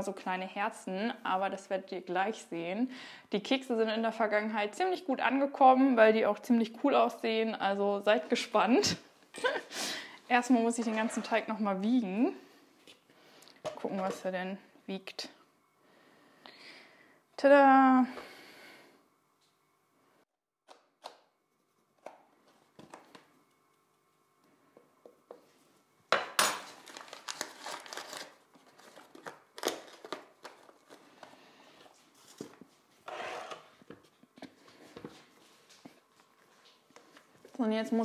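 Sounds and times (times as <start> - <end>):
packet crinkling and rustling: 26.6 - 32.7.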